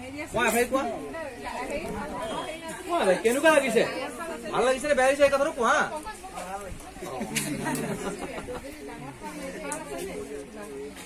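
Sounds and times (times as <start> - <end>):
people talking in overlapping chatter: 0.0 - 11.0.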